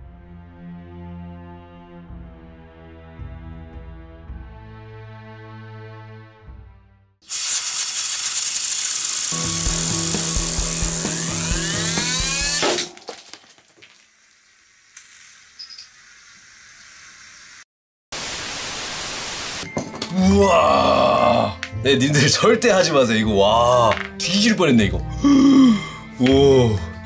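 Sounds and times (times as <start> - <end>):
background music: 0.0 - 7.1, 9.4 - 12.9, 19.6 - 27.0
compressed air hissing: 7.3 - 12.6
fidget spinner whining: 7.9 - 12.6.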